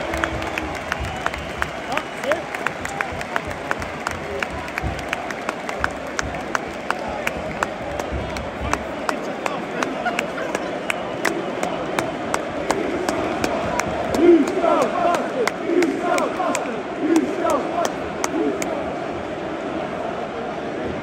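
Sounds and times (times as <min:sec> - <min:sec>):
sharp regular claps: 0:00.0 - 0:18.8
stadium crowd noise: 0:00.0 - 0:21.0
crowd shouting chant: 0:10.0 - 0:21.0.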